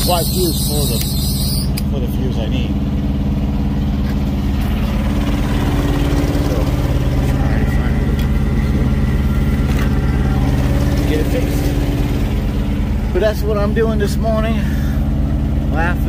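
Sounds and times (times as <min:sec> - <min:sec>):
truck engine idling: 0:00.0 - 0:16.0.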